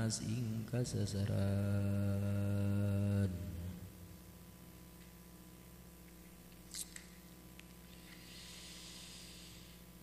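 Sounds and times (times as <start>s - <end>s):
low steady hum: 0.0s - 10.0s
exhaled breath: 7.9s - 9.8s.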